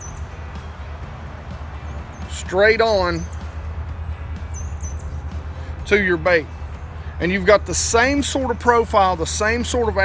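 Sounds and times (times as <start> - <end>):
small bird chirping: 0.0 - 0.4, 1.8 - 3.6, 4.4 - 5.4.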